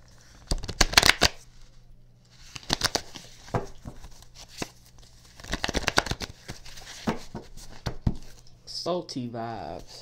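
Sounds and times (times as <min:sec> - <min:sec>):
cards being shuffled: 0:00.2 - 0:01.7, 0:02.3 - 0:08.5.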